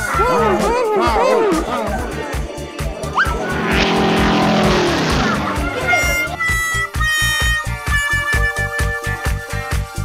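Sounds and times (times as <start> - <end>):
background music with steady beat: 0.0 - 4.0, 5.7 - 10.0
cartoon jet flyby whoosh: 3.0 - 6.8.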